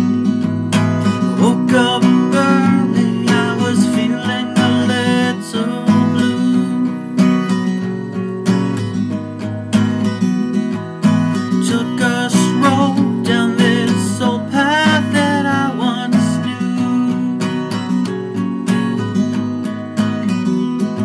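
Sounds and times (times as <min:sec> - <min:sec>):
acoustic guitar strumming: 0:00.0 - 0:21.0
man singing: 0:01.0 - 0:07.2, 0:11.5 - 0:17.6.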